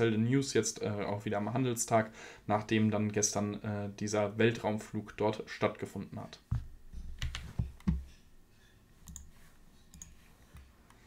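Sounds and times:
computer mouse clicks: 9.0 - 11.0.

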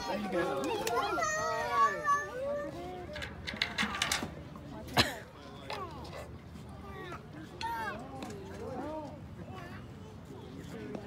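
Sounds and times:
children calling and squealing: 0.0 - 3.3.

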